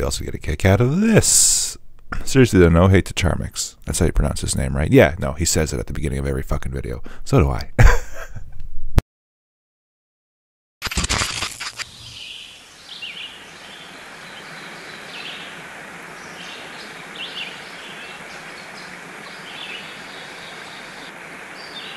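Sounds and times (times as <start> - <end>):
crackling digital static: 10.8 - 12.2
outdoor ambient noise: 10.8 - 21.9.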